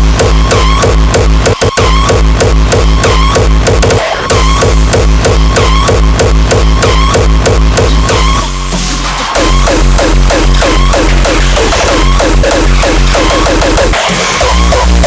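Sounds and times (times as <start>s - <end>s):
busy synth layers: 0.0s - 15.0s
pounding kick drum: 0.0s - 15.0s.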